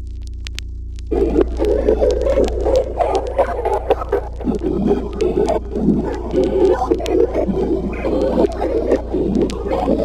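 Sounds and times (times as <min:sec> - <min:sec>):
scattered crackles: 0:00.0 - 0:10.0
steady low hum: 0:00.0 - 0:10.0
grainy distorted groaning: 0:01.0 - 0:10.0.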